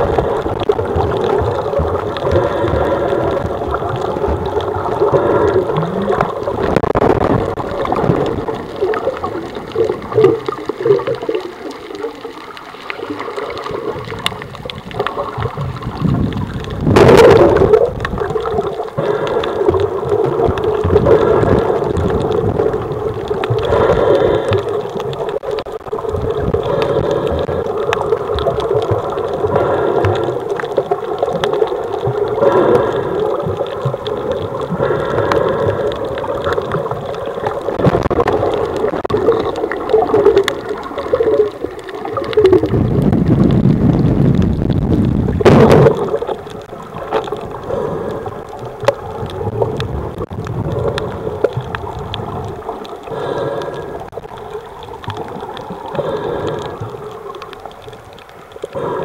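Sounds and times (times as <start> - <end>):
underwater gurgling: 0.0 - 59.0.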